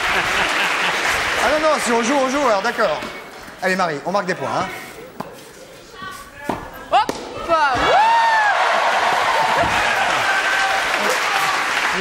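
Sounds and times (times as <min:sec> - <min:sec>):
audience applauding: 0:00.0 - 0:02.9, 0:08.0 - 0:12.0.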